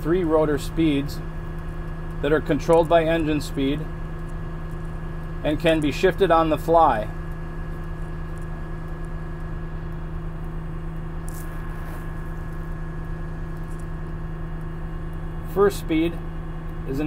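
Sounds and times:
diesel engine droning: 0.0 - 17.0.

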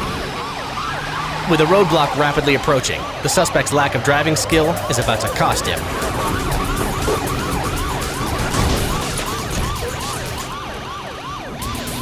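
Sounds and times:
engine and road noise: 0.0 - 12.0
police siren yelping: 0.0 - 12.0.

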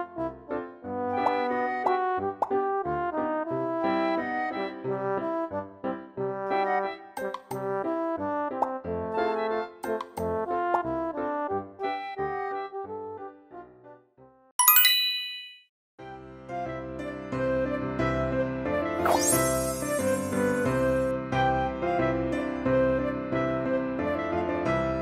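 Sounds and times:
instrumental background music: 0.0 - 15.0, 16.0 - 25.0
sparkly bell-like chime: 14.6 - 15.6
rising plop sound effect: 19.0 - 21.0.

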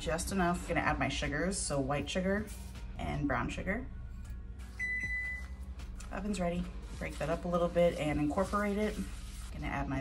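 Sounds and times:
soft background music: 0.0 - 10.0
oven beep: 4.7 - 5.6.

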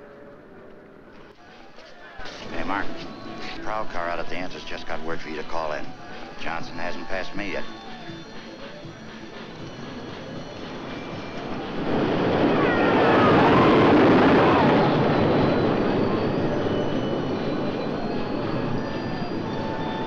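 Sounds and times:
roller coaster on wooden track: 7.4 - 20.0.

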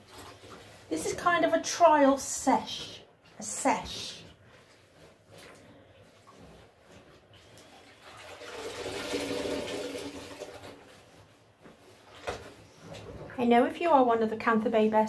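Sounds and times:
water sloshing in a bucket: 0.0 - 14.1.

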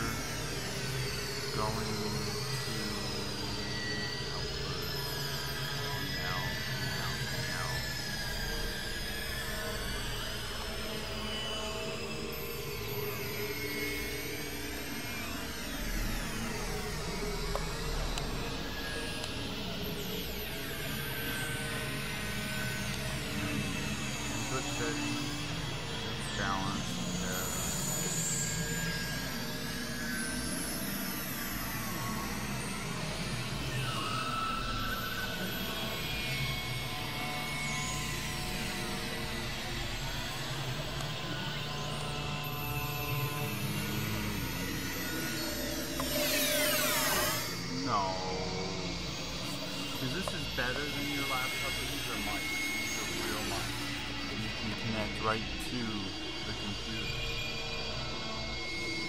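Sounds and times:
constant low hum: 0.0 - 59.0
synthesizer drones with pitch glides: 0.0 - 59.0.

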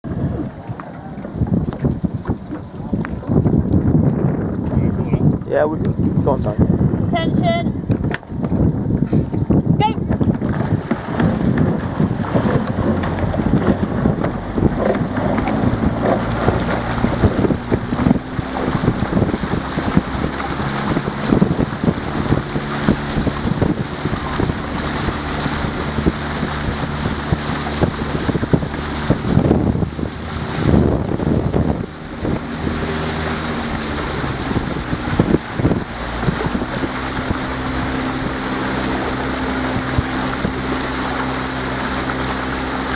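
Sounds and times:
boat engine running: 0.0 - 42.9
water noise from moving boat: 0.0 - 42.9
wind buffeting microphone: 0.0 - 42.9.

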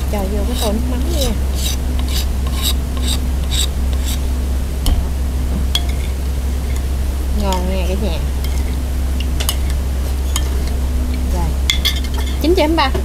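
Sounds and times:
metal spoon scraping wooden board: 0.5 - 4.2.

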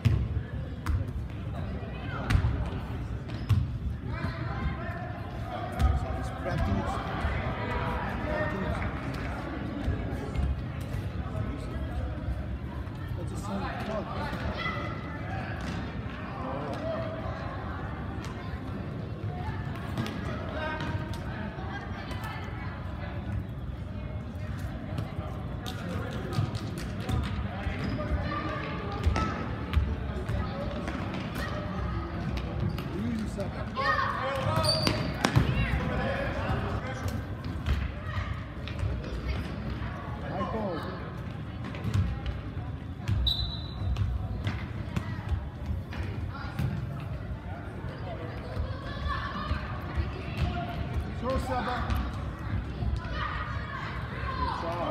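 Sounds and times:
spectators chatting and shouting: 0.0 - 54.9.

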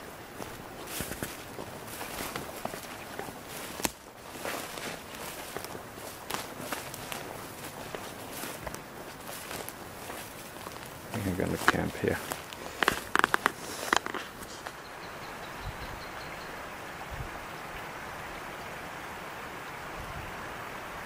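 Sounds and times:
footsteps through undergrowth: 0.0 - 14.9.

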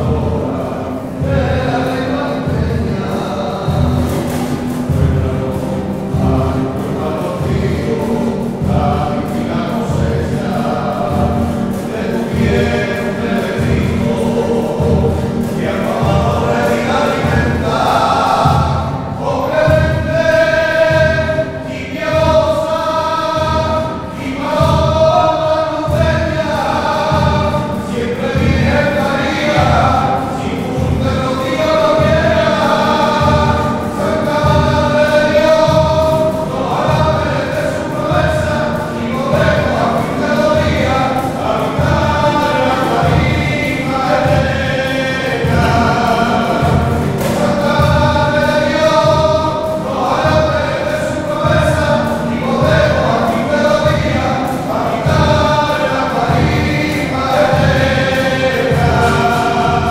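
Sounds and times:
acoustic guitars strummed: 0.0 - 59.9
choir singing a hymn: 0.0 - 59.9.

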